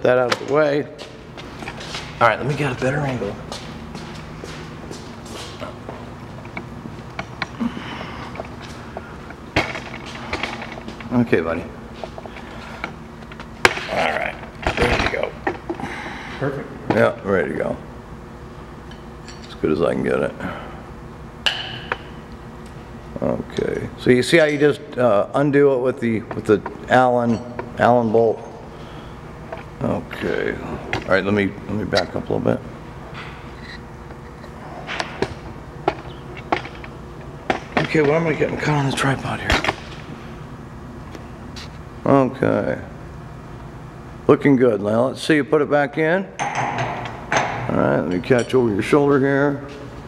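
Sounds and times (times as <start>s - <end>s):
low steady background noise: 0.0s - 50.0s
low steady hum: 0.0s - 50.0s.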